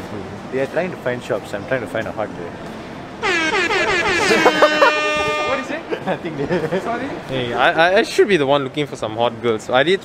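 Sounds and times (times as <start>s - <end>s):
air horn blast: 3.2s - 5.8s
voices: 3.2s - 8.4s.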